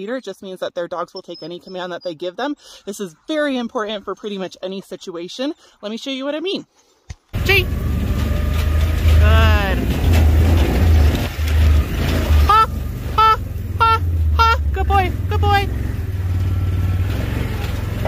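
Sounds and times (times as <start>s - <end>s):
person calling commands to dogs: 7.4s - 7.7s, 9.2s - 9.8s, 12.5s - 15.8s
wheeled rig rolling on dirt: 7.4s - 18.0s.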